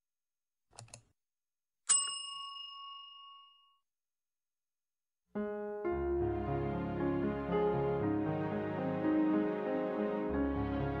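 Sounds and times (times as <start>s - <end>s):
notification bell ding: 1.9s - 3.8s.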